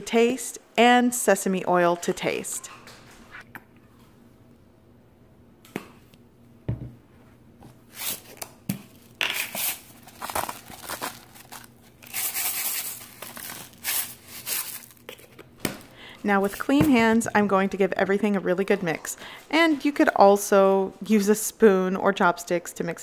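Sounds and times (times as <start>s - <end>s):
kitchen handling noises: 8.7s - 18.3s.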